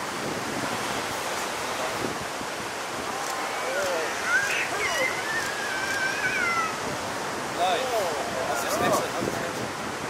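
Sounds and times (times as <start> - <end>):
ocean waves breaking: 0.0 - 10.0.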